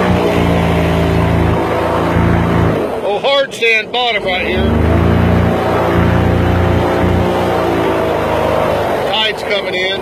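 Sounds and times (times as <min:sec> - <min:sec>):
boat engine running hard: 0:00.0 - 0:10.0.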